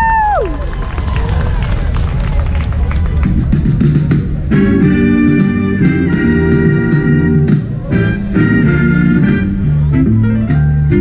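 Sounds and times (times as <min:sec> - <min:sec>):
high woo cheer: 0:00.0 - 0:01.5
audience applauding: 0:00.0 - 0:04.0.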